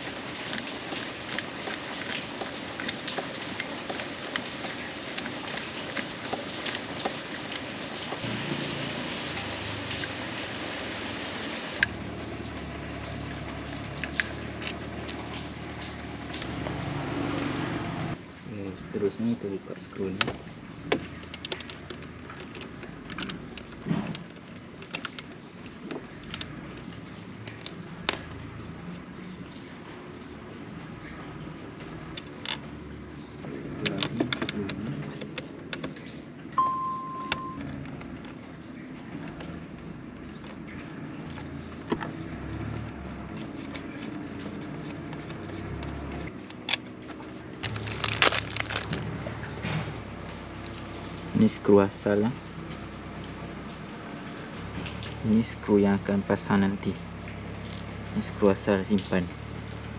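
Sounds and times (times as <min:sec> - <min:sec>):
short steady beep: 0:36.6 - 0:37.6.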